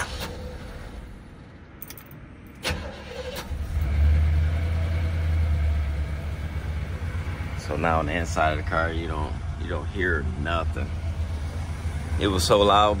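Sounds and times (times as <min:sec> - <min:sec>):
car engine idling: 0:02.5 - 0:13.0.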